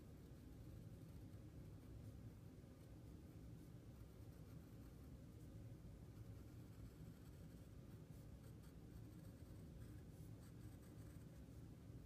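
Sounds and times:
pencil scratching on paper: 6.1 - 11.6.

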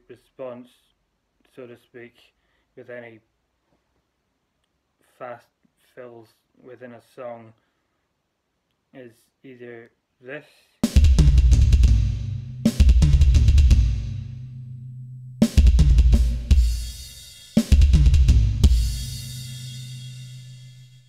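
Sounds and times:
electronic drum fills: 10.8 - 14.4, 15.4 - 21.0
double bass drum strokes: 11.0 - 14.2
crash cymbal ringing: 18.7 - 21.0.

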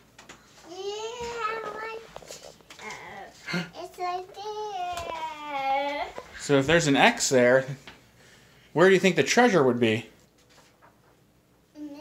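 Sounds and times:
small child sing-song vocalizing: 0.6 - 6.2, 11.7 - 12.0.

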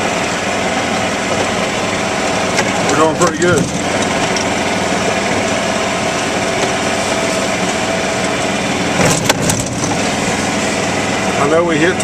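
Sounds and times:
golf cart drive humming: 0.0 - 12.0.

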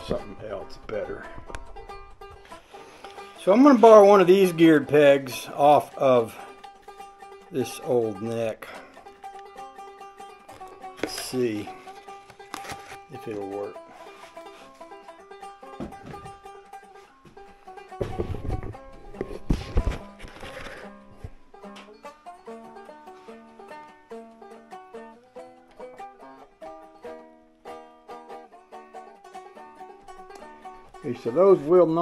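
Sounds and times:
plucked banjo music: 0.0 - 32.0
knocks and handling rattles: 17.9 - 21.4.

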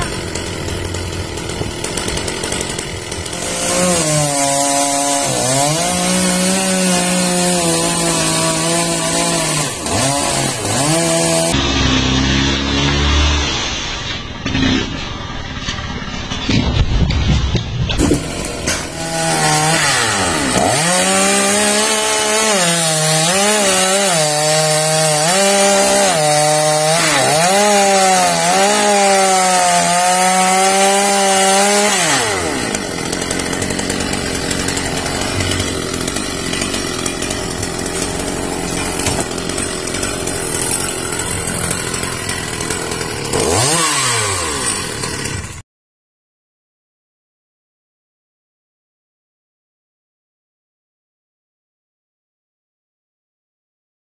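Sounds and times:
chainsaw cutting into stump: 0.0 - 15.0, 17.9 - 45.6.

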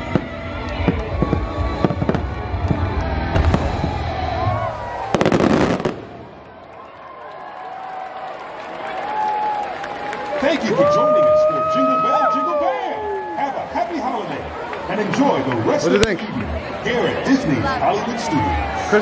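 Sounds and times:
music soundtrack: 0.0 - 5.5
fireworks banging: 0.0 - 6.6.

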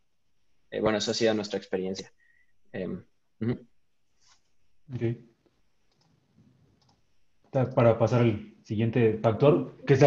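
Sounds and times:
computer mouse clicks: 5.8 - 7.1.

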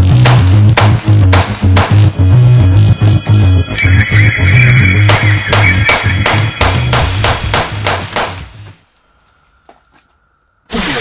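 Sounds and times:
rock music with guitar and bass: 0.0 - 8.8
rapid gunshots: 0.2 - 2.1, 5.0 - 8.5.

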